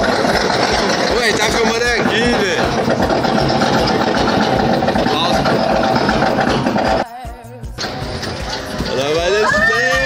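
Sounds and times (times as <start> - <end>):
amusement ride rumbling: 0.0 - 7.1, 7.8 - 10.0.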